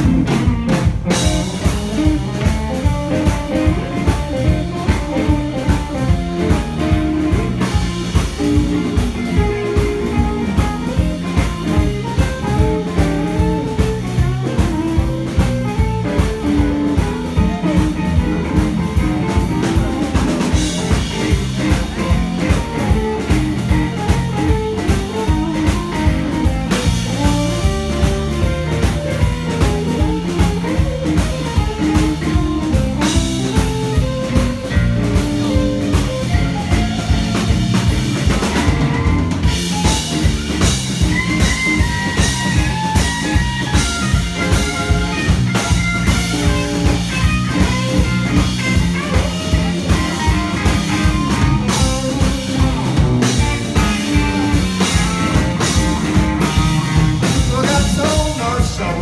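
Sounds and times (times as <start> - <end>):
bass guitar: 0.0 - 59.0
drum kit steady beat: 0.0 - 59.0
electric guitars: 0.0 - 59.0.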